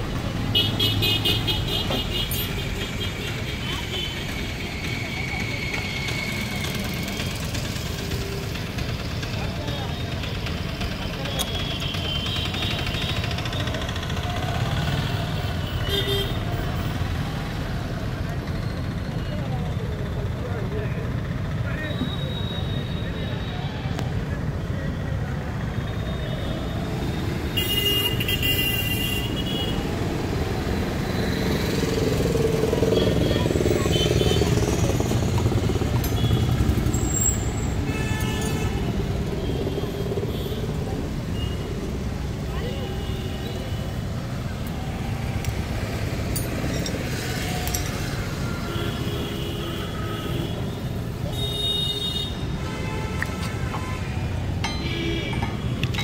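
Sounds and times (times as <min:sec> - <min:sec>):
low rumble of traffic: 0:00.0 - 0:56.0.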